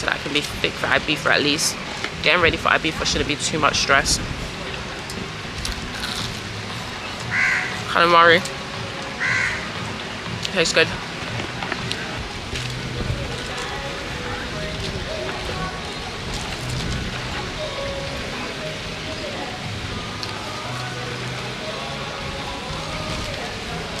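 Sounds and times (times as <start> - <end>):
distant voices: 0.0 - 24.0
faint background music: 0.0 - 24.0.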